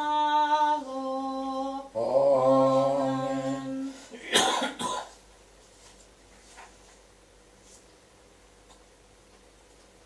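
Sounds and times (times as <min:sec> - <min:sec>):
man coughing: 0:04.1 - 0:05.2.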